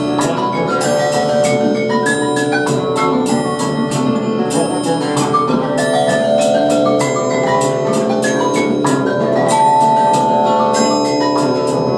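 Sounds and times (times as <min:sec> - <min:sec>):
marimba held notes: 0:00.0 - 0:11.9.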